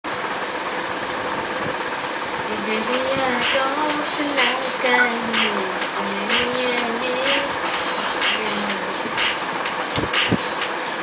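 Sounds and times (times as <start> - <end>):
faint even hum: 1.4 - 11.0.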